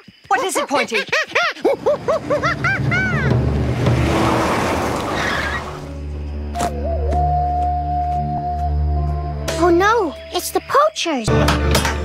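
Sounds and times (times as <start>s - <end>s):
tyres rushing on dirt: 1.8s - 6.0s
truck engine rumbling: 1.8s - 6.1s.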